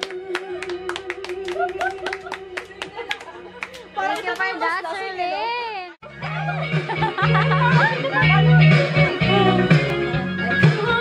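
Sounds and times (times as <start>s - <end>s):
woman singing into microphone: 0.0s - 3.2s, 8.5s - 11.0s.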